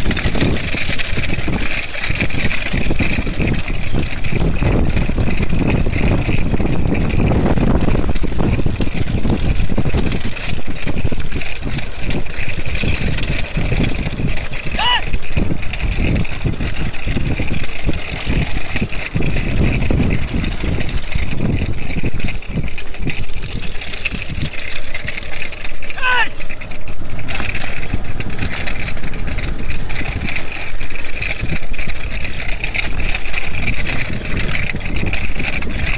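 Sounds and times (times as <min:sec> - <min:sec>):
rumble of moving cart: 0:00.0 - 0:35.9
wind buffeting microphone: 0:00.0 - 0:35.9
person calling out: 0:14.7 - 0:15.2, 0:26.0 - 0:26.4.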